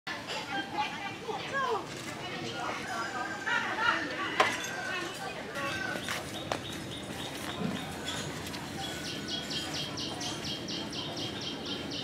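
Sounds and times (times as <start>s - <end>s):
footsteps in sandals on paving: 5.5s - 9.1s
bird chirping: 6.0s - 12.0s.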